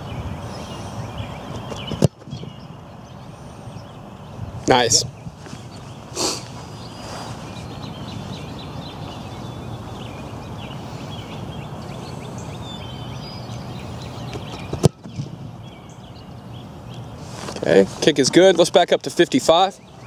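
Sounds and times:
birds chirping: 0:00.0 - 0:20.0
outdoor background noise: 0:00.0 - 0:20.0.

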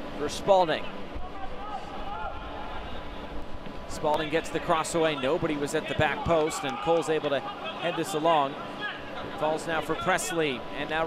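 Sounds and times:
faint distant shouting voices: 0:01.2 - 0:03.2.

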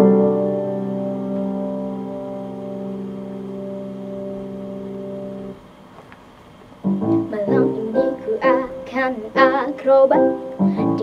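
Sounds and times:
sustained keyboard chord: 0:00.0 - 0:11.0.

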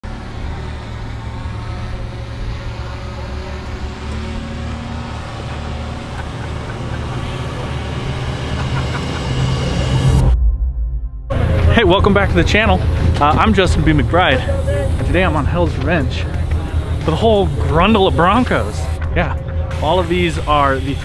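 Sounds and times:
engine rumbling under load: 0:00.0 - 0:10.4, 0:11.3 - 0:21.0.

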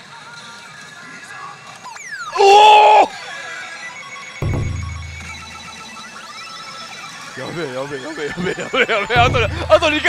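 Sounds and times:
steady electronic tones: 0:03.9 - 0:10.0
deep electronic boom: 0:09.2 - 0:10.0.

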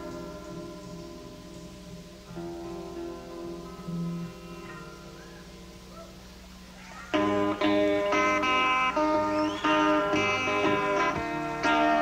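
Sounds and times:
guitars holding a ringing chord: 0:00.0 - 0:12.0.

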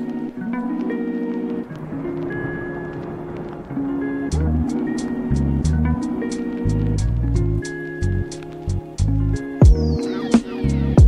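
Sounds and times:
plucked string tune: 0:00.0 - 0:11.0
light ticking beat: 0:04.2 - 0:11.0
deep bass: 0:04.3 - 0:04.7, 0:05.3 - 0:06.0, 0:09.0 - 0:10.0.

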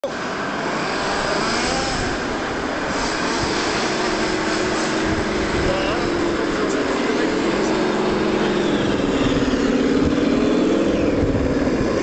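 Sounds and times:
model tank driving over sand: 0:00.0 - 0:12.0.

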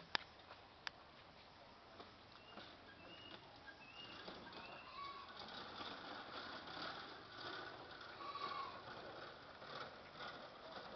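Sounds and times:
faint outdoor background: 0:00.0 - 0:10.9.

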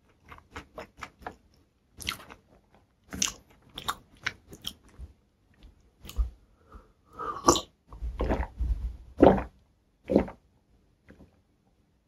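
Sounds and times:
crisp chewing of food: 0:00.0 - 0:06.3.

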